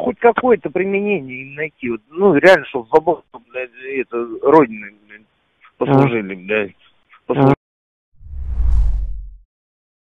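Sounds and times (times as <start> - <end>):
deep whoosh: 8.2 - 9.4.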